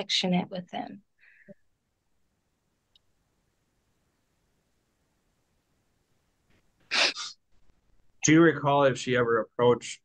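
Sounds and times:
woman sneezing: 0:06.9 - 0:07.3.

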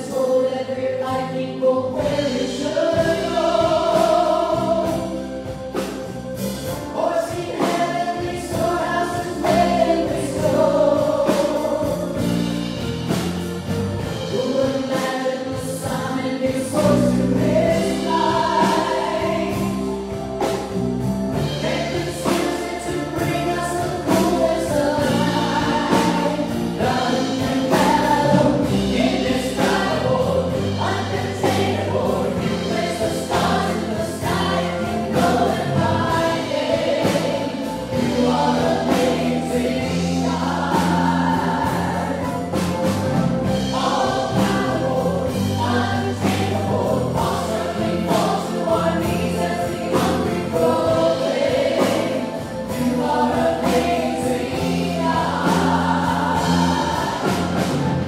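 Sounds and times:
band playing worship song: 0:00.0 - 0:58.0
people singing into microphones: 0:00.0 - 0:58.0.

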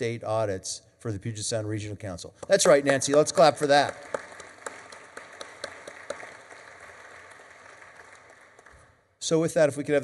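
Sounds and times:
audience applauding: 0:02.5 - 0:09.0.

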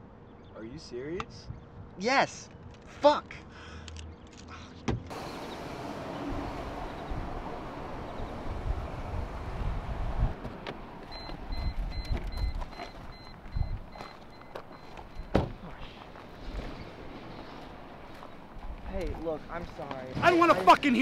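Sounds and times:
car engine rumble: 0:04.4 - 0:20.0
car door opening: 0:10.4 - 0:13.0, 0:13.9 - 0:15.7
door-open warning chime beeping: 0:11.1 - 0:15.4.

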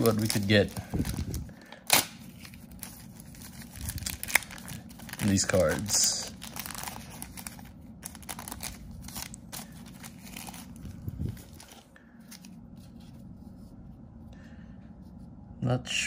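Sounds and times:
foil wrapper crinkling: 0:00.0 - 0:12.5
cards rustling: 0:00.0 - 0:13.4.

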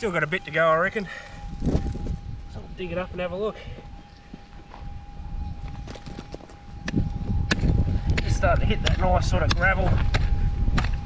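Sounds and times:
pick striking gravelly dirt: 0:05.6 - 0:11.0.

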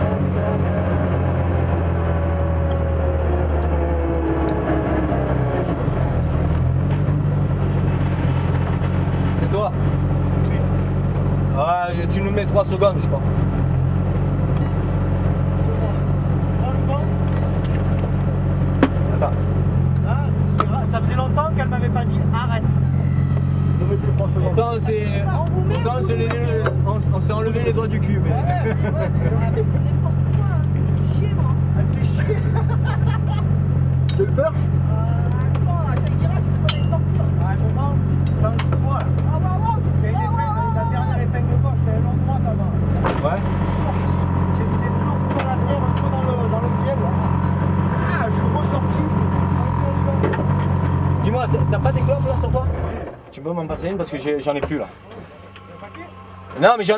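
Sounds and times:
car engine idling: 0:00.0 - 0:56.9
voices talking: 0:18.8 - 0:56.9.

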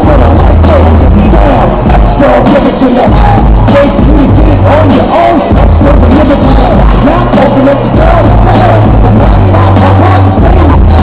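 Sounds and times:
loud music from speakers: 0:00.0 - 0:11.0.

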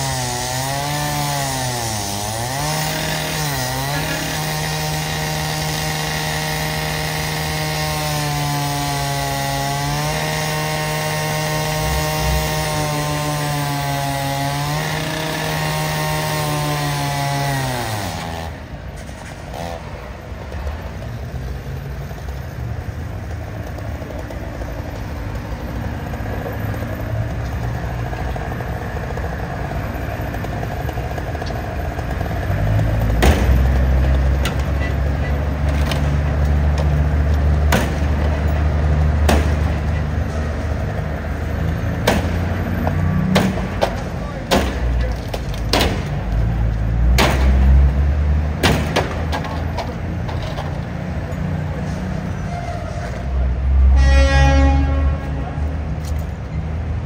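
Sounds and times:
cutoff saw cutting metal: 0:00.0 - 0:20.0
sharp knocks and clatter: 0:30.4 - 0:34.7, 0:37.6 - 0:39.9, 0:42.0 - 0:46.2, 0:48.6 - 0:50.8.

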